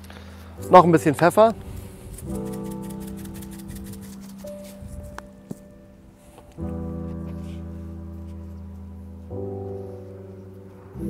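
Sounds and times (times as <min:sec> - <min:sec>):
slow piano chords: 0:00.0 - 0:11.0.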